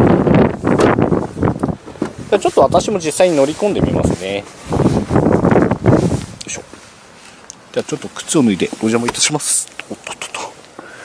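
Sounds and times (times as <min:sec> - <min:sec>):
wind and handling rumble on microphone: 0:00.0 - 0:09.7.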